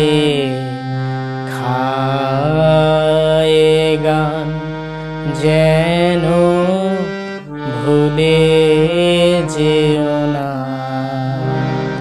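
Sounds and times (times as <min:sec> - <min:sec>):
harmonium melody: 0:00.0 - 0:12.0
man singing: 0:00.0 - 0:12.0.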